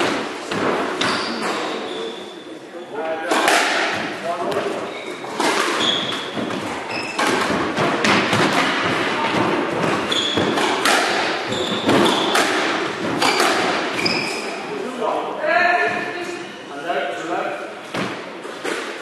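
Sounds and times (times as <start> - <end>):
squash ball hitting rackets and walls: 0.0 - 1.8, 3.2 - 14.5, 17.8 - 19.0
shoes squeaking on wooden floor: 0.9 - 2.9, 4.4 - 8.0, 9.0 - 14.7.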